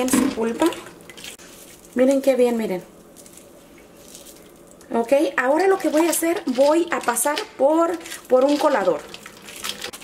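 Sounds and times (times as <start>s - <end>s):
wet squelching of pulp: 3.1s - 10.0s.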